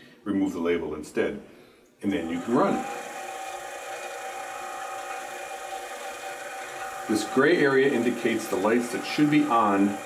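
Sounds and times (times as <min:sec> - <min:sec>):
machine whirring: 0:02.2 - 0:10.0.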